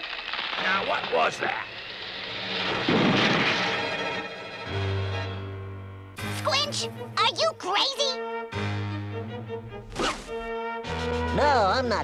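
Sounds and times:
background music: 0:03.8 - 0:12.0.

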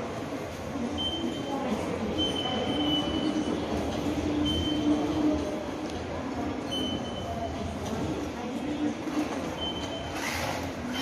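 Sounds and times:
busy hall noise: 0:00.0 - 0:11.0.

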